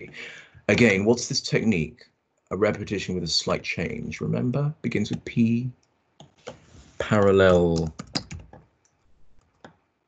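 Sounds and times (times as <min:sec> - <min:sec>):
computer keyboard keystrokes: 0:07.1 - 0:08.6.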